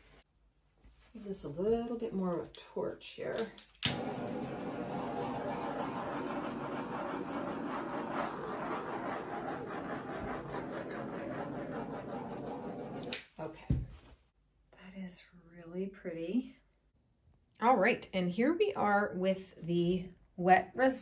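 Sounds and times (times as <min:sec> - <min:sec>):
torch flame hissing: 0:03.9 - 0:10.4.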